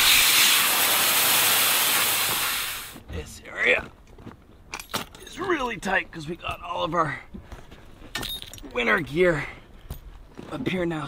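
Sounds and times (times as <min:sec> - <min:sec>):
air rushing from valves: 0:00.0 - 0:03.0.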